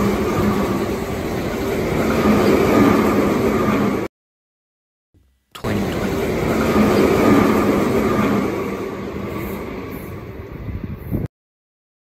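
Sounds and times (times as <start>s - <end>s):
electric train passing: 0.0s - 4.1s, 5.6s - 11.3s.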